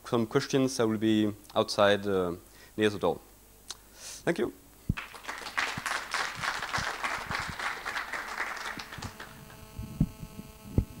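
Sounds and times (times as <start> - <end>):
electrical hum: 4.6 - 11.0
audience applauding: 5.0 - 9.7.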